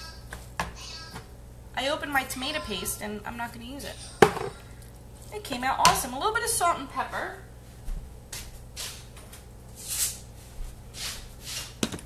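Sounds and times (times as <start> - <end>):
low steady hum: 0.0 - 11.7
rustling and shuffling in kitchen: 2.1 - 12.0.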